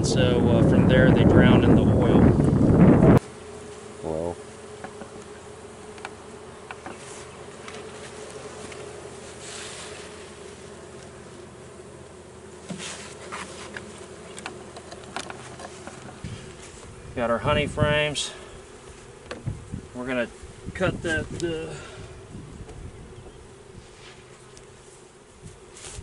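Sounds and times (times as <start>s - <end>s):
bees buzzing: 0.0s - 26.0s.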